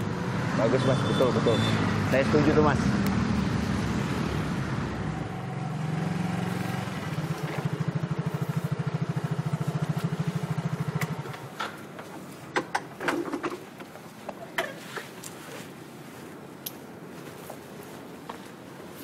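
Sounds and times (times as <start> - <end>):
motor scooter engine: 2.8 - 13.6.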